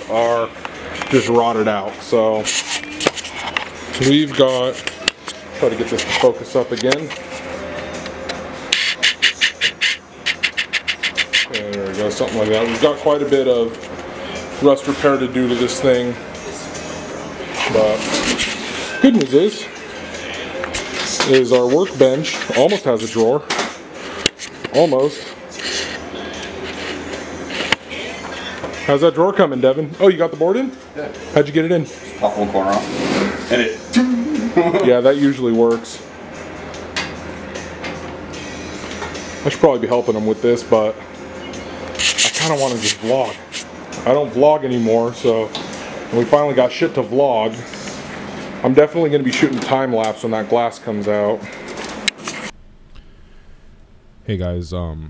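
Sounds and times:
rapid rasping strokes: 0:08.8 - 0:11.7
steady low hum: 0:49.9 - 0:55.0.

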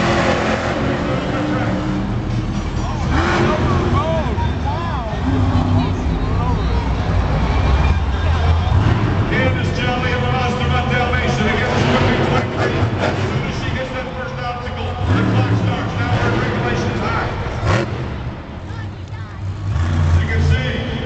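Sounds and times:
truck engine revving: 0:00.0 - 0:21.0.

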